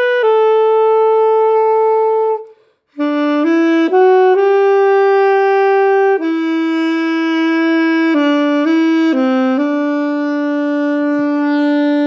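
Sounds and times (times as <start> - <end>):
alto saxophone long note: 0.0 - 12.0.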